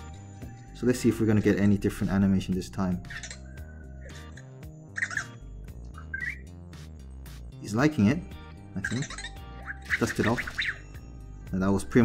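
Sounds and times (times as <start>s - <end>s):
background music: 0.0s - 12.0s
robot electronic chirps and squeaks: 3.0s - 6.6s, 8.8s - 11.0s.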